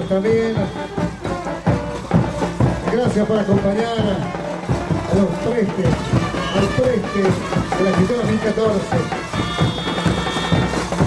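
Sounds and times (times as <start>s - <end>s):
band music with sliding melody: 0.0s - 11.0s.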